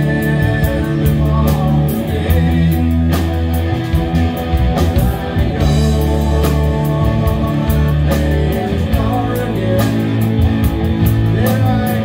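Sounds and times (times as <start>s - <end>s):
electric guitars: 0.0s - 12.0s
rock band playing: 0.0s - 12.0s.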